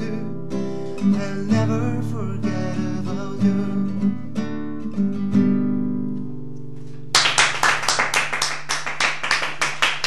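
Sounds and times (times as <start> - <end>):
hands clapping in applause: 7.1 - 10.0.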